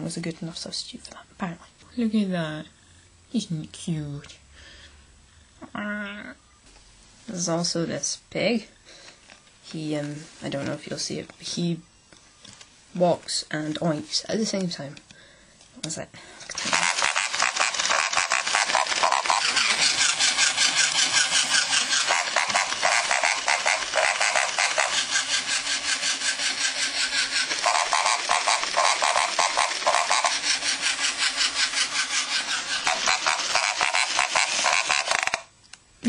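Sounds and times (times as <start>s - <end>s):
toy motor and gears rattling: 16.5s - 35.5s
toy pig oinking: 16.6s - 35.4s.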